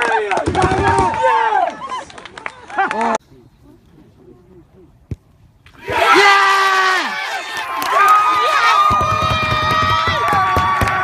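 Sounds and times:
crowd cheering and shouting: 5.7 - 11.0.

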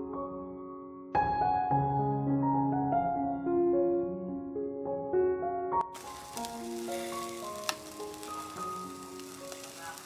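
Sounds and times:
slow background music: 0.0 - 10.0
meat sizzling on charcoal grill: 5.8 - 10.0.

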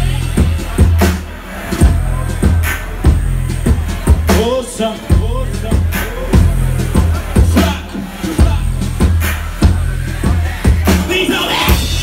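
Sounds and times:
deep bass line: 0.0 - 12.0
drum kit beat: 0.0 - 12.0.

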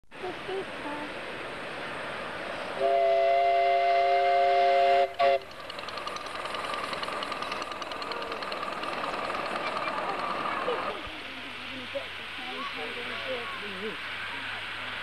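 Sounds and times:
hiss of steam: 0.2 - 7.6, 10.3 - 15.0
steam locomotive chuffing: 2.6 - 15.0
steam whistle chord: 2.8 - 5.5.

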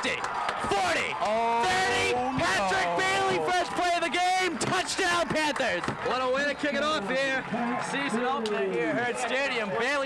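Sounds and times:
man shouting drawn-out calls: 1.6 - 3.5.

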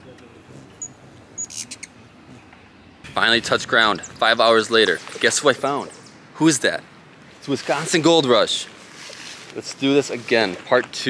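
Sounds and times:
bird chirping: 0.0 - 6.5
faint distant voices: 0.0 - 8.8.

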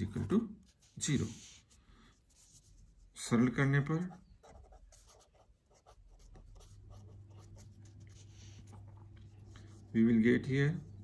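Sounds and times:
low steady hum: 0.0 - 11.0
pen scratching on paper: 0.7 - 2.8, 4.0 - 9.9.

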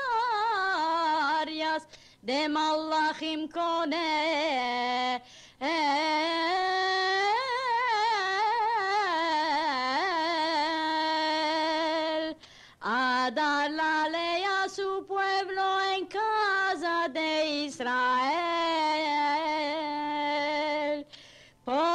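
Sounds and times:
woman singing unaccompanied: 0.0 - 21.9.

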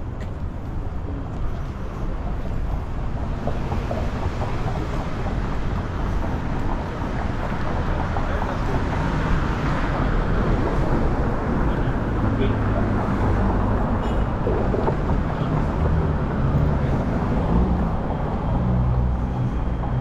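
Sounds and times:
cars passing: 0.0 - 20.0.

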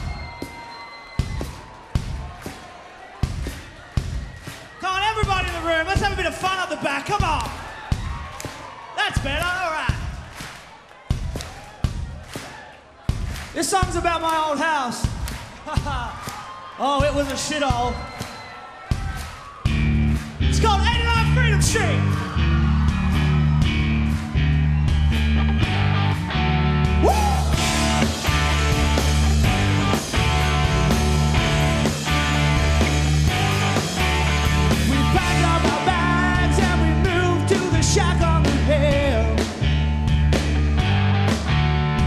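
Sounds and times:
audience clapping along: 0.0 - 36.8
crowd noise: 0.0 - 42.0
electric guitars and bass guitar: 19.7 - 42.0.

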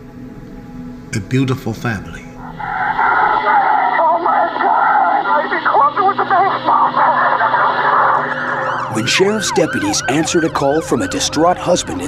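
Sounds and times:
indistinct voices over radio: 2.3 - 12.0.

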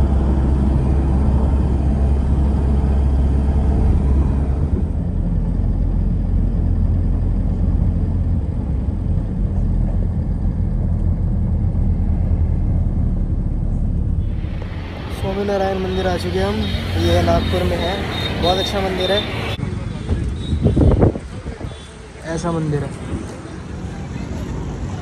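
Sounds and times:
car interior driving rumble: 0.0 - 15.7.

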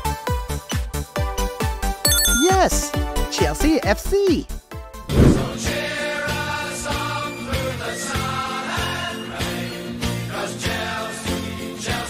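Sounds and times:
music: 0.0 - 12.0
bright chime: 2.1 - 2.9
swooping sounds: 5.1 - 5.6.

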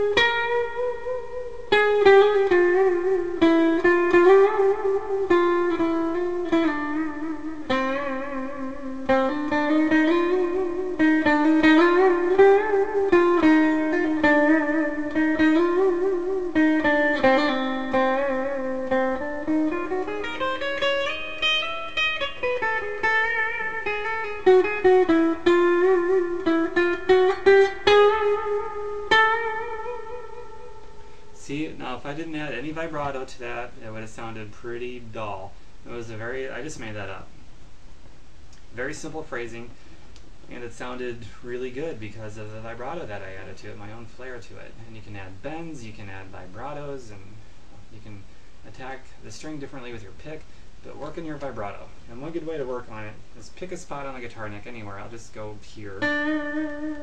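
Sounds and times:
electric guitar melody with vibrato: 0.0 - 31.4, 56.0 - 57.0.

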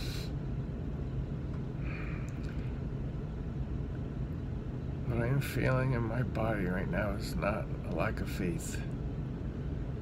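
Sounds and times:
bus engine idling: 0.0 - 10.0.

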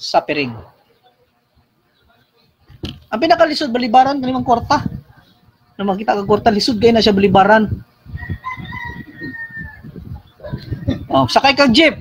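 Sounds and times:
rooster crowing: 8.0 - 10.8.

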